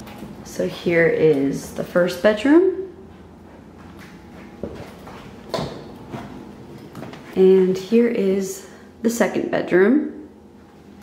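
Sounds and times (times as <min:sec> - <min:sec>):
footsteps on hardwood floor: 0:03.1 - 0:07.4.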